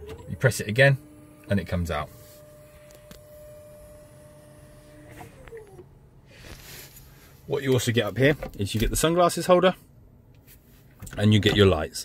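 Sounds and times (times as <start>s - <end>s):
small electric motor whine: 0.0s - 5.9s.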